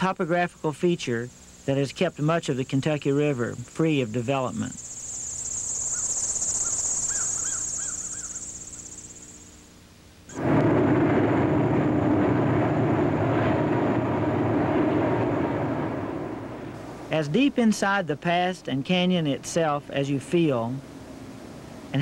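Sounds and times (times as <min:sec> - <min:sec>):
insects trilling: 0:00.0 - 0:10.4, 0:15.2 - 0:22.0
bird chirping: 0:04.0 - 0:09.6
loud steady rumble: 0:10.3 - 0:18.2.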